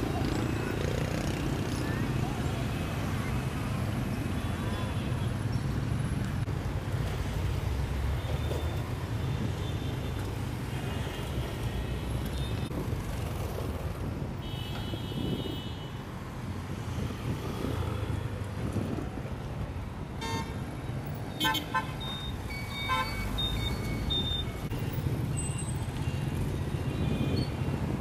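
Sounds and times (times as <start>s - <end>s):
motorbike and car engines: 0.0s - 14.4s, 16.2s - 28.0s
horn beeping: 21.4s - 24.7s.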